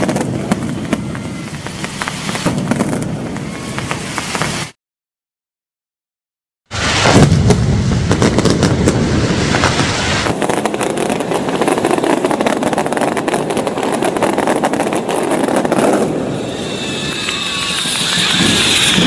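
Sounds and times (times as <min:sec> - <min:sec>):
firecrackers banging and crackling: 0:00.0 - 0:04.8, 0:06.7 - 0:19.0.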